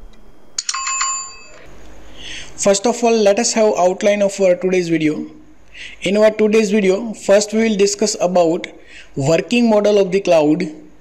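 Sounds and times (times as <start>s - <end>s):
bright bell ding: 0.6s - 1.7s.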